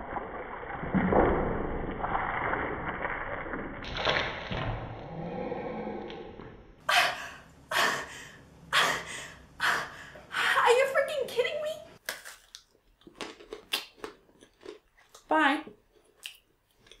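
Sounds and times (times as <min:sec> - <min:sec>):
crunching bites and chewing: 0:12.0 - 0:15.3.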